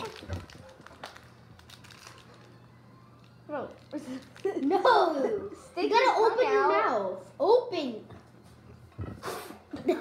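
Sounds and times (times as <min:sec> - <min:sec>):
scissors cutting plastic wrapper: 0:00.0 - 0:02.5
low steady hum: 0:00.0 - 0:10.0.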